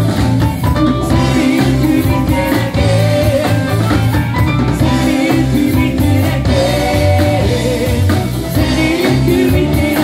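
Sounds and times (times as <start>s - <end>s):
drums: 0.0s - 10.0s
electric bass: 0.0s - 10.0s
guitars: 0.0s - 10.0s
keyboard: 0.0s - 10.0s.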